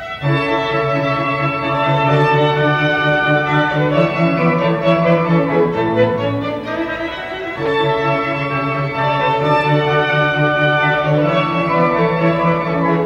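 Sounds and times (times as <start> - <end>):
violins and cello playing: 0.0 - 13.0.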